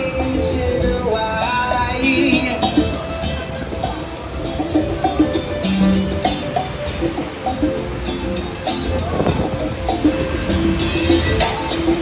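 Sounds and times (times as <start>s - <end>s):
fairground ride music: 0.0s - 12.0s.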